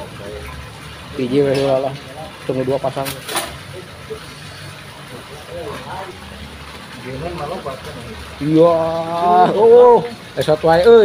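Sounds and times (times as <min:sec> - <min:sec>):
people talking: 0:05.1 - 0:06.3, 0:06.9 - 0:11.0.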